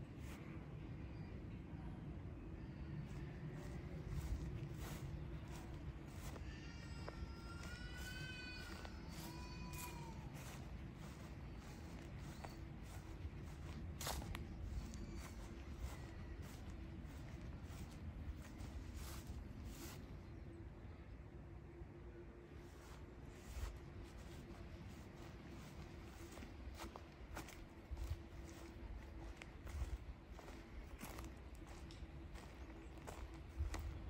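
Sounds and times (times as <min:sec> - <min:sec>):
soft footsteps: 0:03.1 - 0:20.1, 0:22.8 - 0:34.0.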